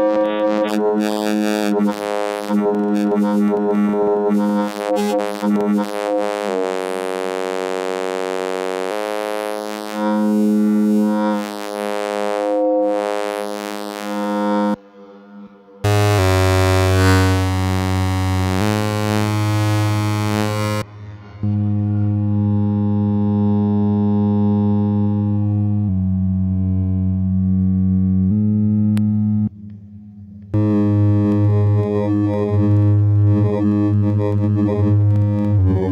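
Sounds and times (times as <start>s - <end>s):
held synth notes: 0.0s - 35.9s.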